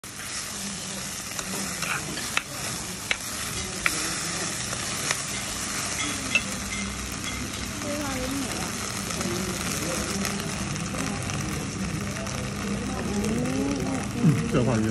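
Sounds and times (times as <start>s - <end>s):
meat sizzling in a clay pot: 0.0s - 14.9s
metal spoon stirring: 1.4s - 7.7s.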